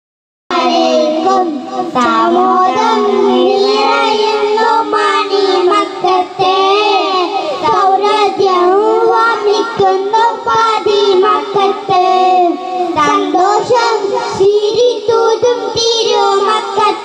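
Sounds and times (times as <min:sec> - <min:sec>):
boys singing together: 0:00.5 - 0:17.0.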